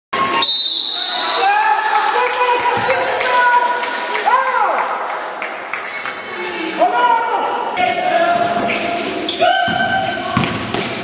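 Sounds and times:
referee's whistle: 0:00.4 - 0:01.5
voices echoing in a hall: 0:00.7 - 0:11.0.

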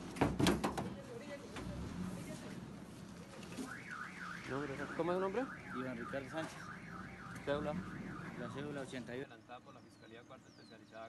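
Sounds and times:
car alarm siren: 0:03.6 - 0:09.0.

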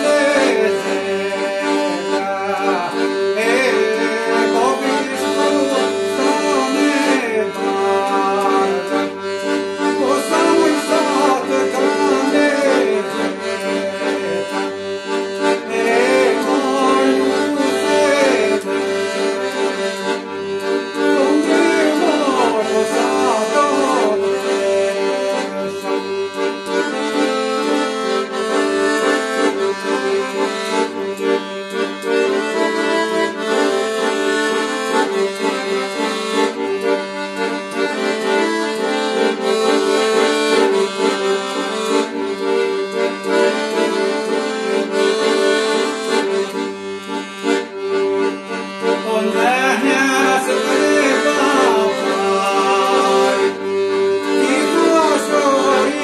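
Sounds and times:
piano accordion playing a folk tune: 0:00.0 - 0:56.0.

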